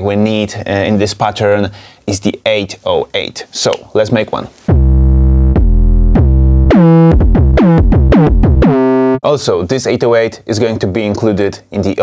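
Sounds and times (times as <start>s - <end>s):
synthesized bass notes: 4.7s - 9.2s.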